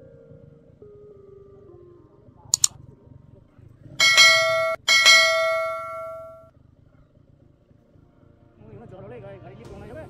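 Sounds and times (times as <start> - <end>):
bell chime strikes: 4.0 - 6.4.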